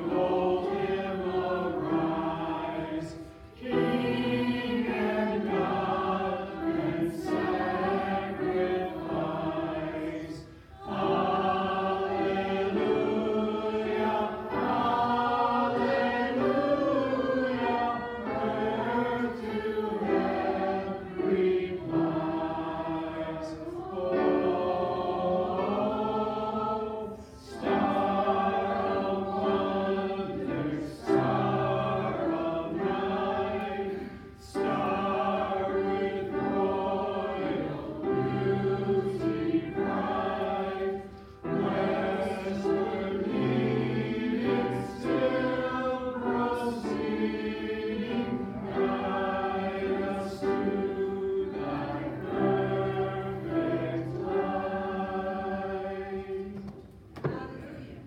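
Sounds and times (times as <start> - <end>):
congregation singing a hymn: 0.0 - 58.0.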